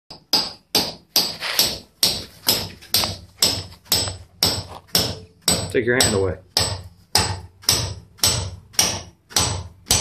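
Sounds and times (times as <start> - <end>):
hammer striking metal pins: 0.1 - 10.0.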